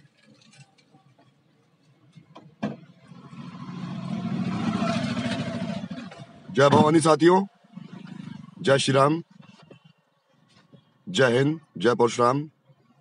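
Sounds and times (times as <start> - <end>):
vehicle engine: 0.0 - 10.8.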